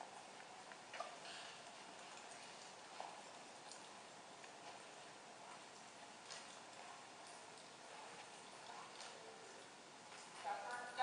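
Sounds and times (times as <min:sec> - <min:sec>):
faint footsteps on concrete: 0:04.4 - 0:11.0.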